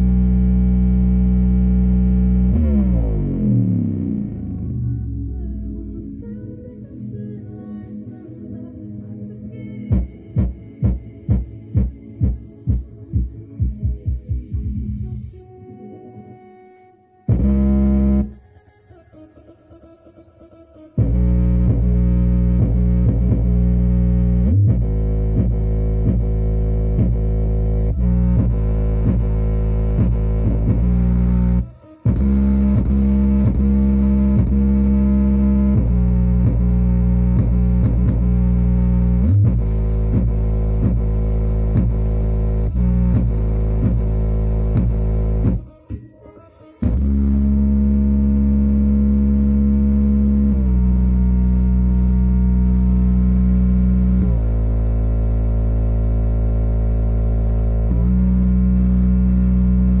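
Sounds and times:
bass-heavy music through speaker: 0.0s - 60.0s.

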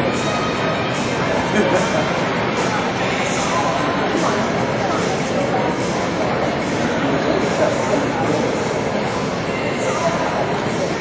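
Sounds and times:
indistinct voices: 0.0s - 11.0s
indoor arena background noise: 0.0s - 11.0s.

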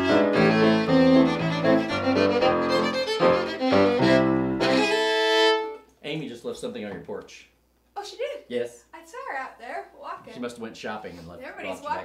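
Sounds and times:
fiddle playing dance tune: 0.0s - 5.8s
piano accompaniment: 0.0s - 5.8s.

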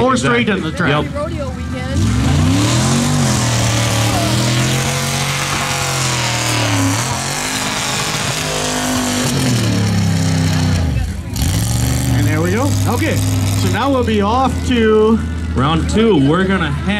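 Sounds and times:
engine running at high revs: 0.7s - 16.9s.

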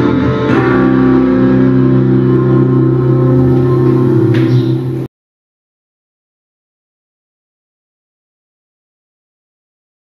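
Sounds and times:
electric guitar chord ringing: 0.0s - 5.1s.

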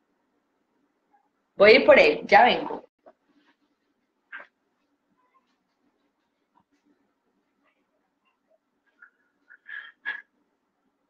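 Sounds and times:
baby crying faintly: 5.2s - 5.6s.

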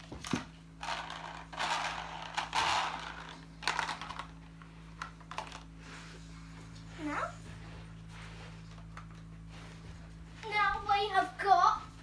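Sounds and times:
plastic toys clicking and knocking: 0.2s - 4.4s, 5.0s - 5.7s.

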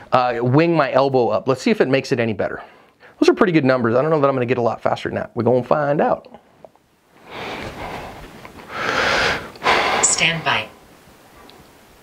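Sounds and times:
man breathing close to microphone: 7.2s - 10.1s.

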